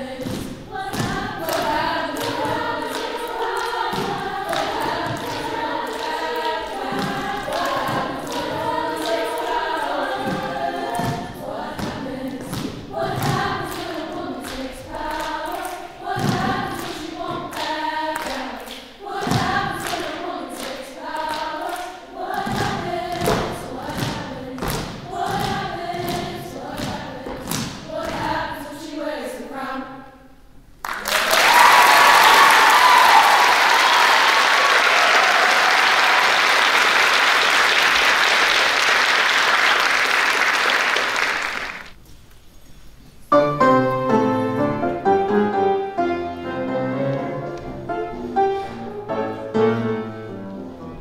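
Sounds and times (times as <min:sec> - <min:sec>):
women's choir singing a cappella: 0:00.0 - 0:30.4.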